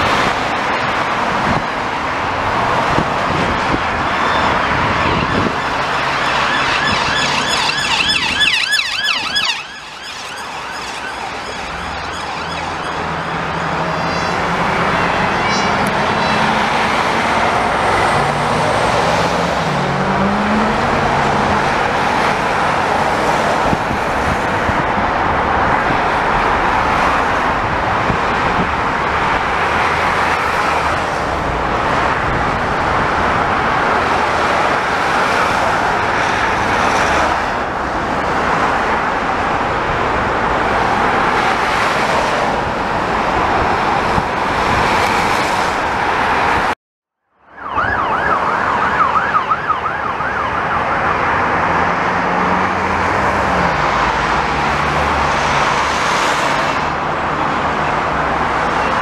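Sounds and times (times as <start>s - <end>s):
road traffic passing: 0.0s - 59.0s
emergency siren warbling: 2.9s - 25.0s, 47.2s - 54.6s.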